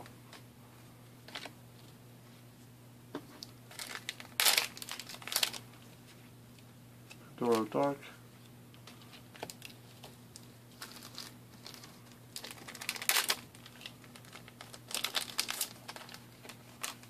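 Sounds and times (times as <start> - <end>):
trading cards clicking and rustling: 7.4 - 7.8.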